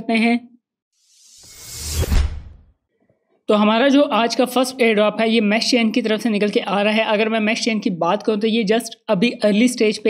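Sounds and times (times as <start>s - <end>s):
whoosh: 1.0s - 2.7s.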